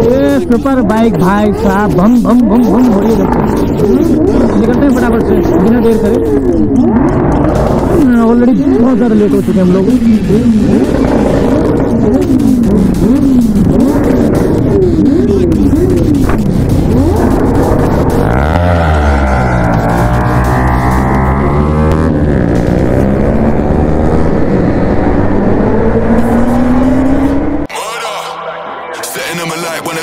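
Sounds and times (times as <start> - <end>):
motorcycle accelerating: 0.0 - 27.7
motorcycle engines revving: 0.0 - 27.7.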